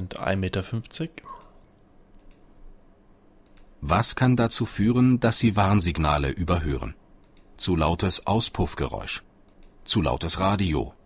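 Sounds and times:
computer mouse clicks: 1.4 - 2.5, 3.4 - 3.8, 7.2 - 7.6, 9.4 - 9.8
person speaking: 3.8 - 11.0.

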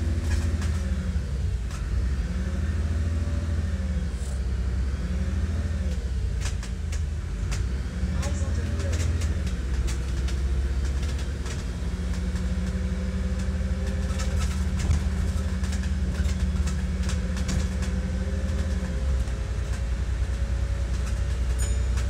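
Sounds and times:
clicks and rattles of bus body: 0.0 - 2.1, 5.8 - 22.0
bus engine drone: 0.0 - 22.0.

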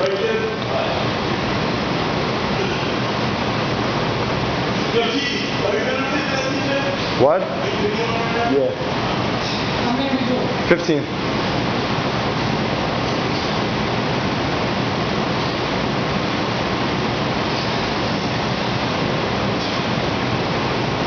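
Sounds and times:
steady rushing noise: 0.0 - 21.0.

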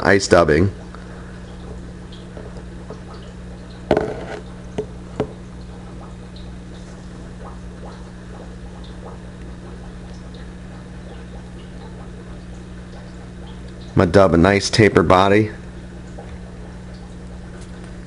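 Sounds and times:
low electrical hum: 0.0 - 18.0.

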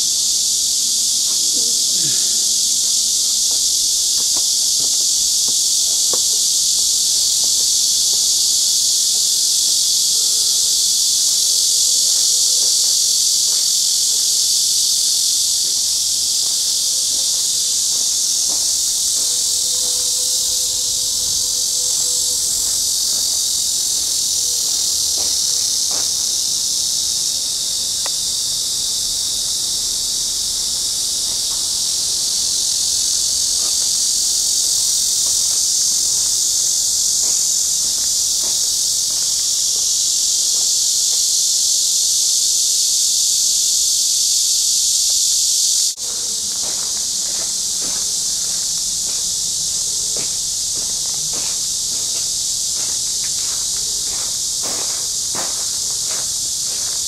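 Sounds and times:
cicadas buzzing: 0.0 - 57.0.

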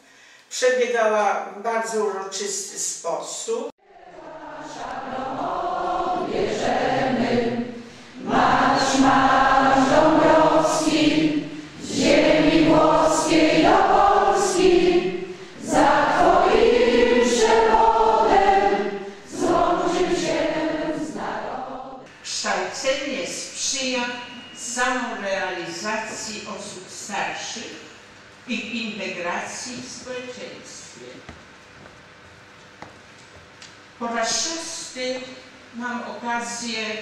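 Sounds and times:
group singing in hall: 3.8 - 22.1.

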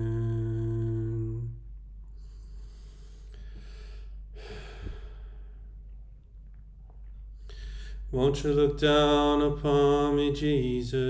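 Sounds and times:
steady low hum: 0.0 - 11.0
singer breathing in: 2.2 - 5.4.

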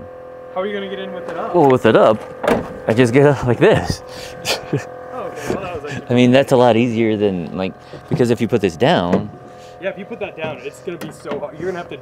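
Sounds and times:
steady hum: 0.0 - 12.0
man laughing: 3.2 - 6.6, 10.5 - 11.0.

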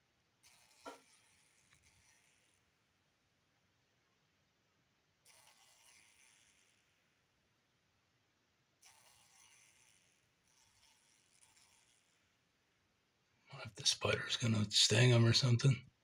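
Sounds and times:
fly buzzing raspily: 0.4 - 2.6, 5.2 - 7.0, 8.8 - 12.2.

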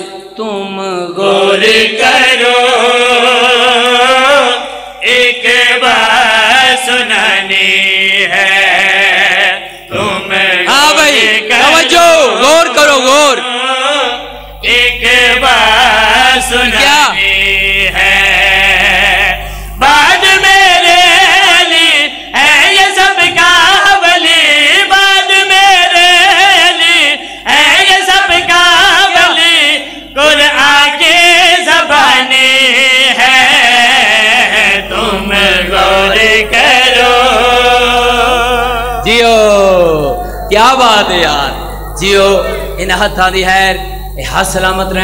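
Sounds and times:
men chanting over loudspeakers: 0.0 - 45.0
low steady hum: 13.9 - 22.4, 33.9 - 45.0.

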